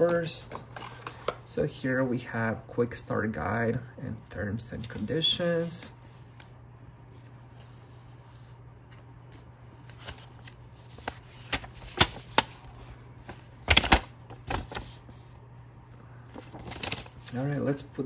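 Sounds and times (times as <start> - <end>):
paper rustling: 0.0 - 1.4, 4.6 - 6.5, 7.1 - 15.4, 16.3 - 17.6
faint steady hum: 0.0 - 18.0
paper crackle: 7.1 - 15.4, 16.3 - 17.5.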